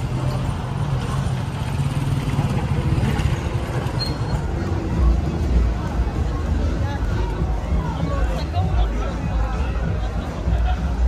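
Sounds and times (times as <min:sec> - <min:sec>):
motorcycle engine running: 0:00.0 - 0:06.5
voices of passers-by: 0:00.0 - 0:11.0.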